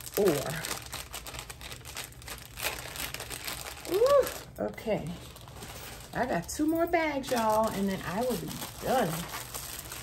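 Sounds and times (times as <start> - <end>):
plastic crinkling and rustling: 0.0 - 10.0.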